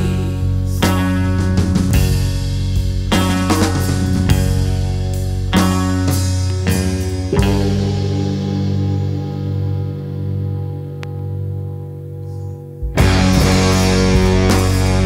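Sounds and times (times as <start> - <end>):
rock band music: 0.0 - 15.0.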